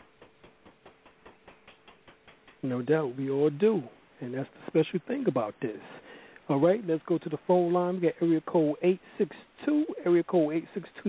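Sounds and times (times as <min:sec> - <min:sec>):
faint steady hum: 0:00.0 - 0:11.0
faint ticking: 0:06.0 - 0:06.5.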